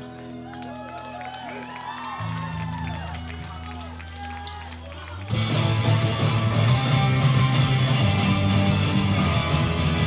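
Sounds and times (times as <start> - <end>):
sustained guitar and bass notes: 5.3 - 10.0.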